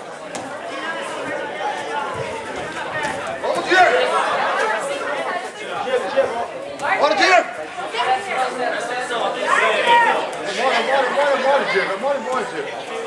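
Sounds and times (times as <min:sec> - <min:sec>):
overlapping chatter of voices: 0:00.0 - 0:13.0.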